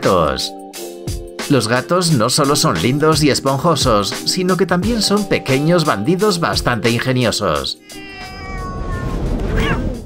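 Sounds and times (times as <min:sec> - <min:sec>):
cat yowling: 0:07.8 - 0:10.0.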